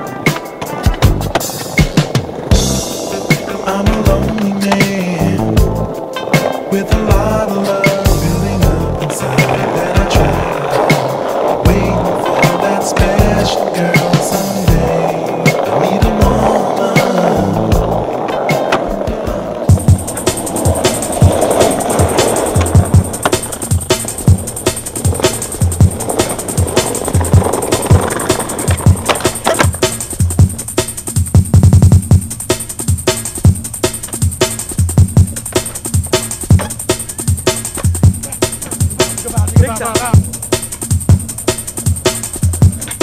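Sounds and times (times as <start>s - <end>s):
music track: 0.0s - 31.0s
skateboard clacking: 0.0s - 43.0s
skateboard wheels rolling on pavement: 0.0s - 43.0s.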